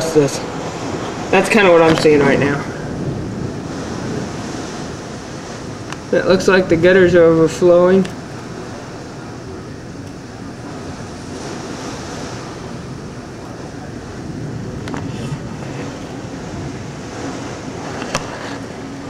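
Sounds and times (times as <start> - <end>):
heavy rain: 0.0 - 19.0
strong wind: 0.0 - 19.0.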